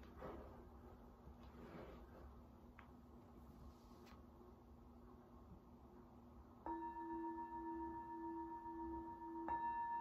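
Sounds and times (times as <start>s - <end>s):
singing bowl ringing: 6.7s - 10.0s.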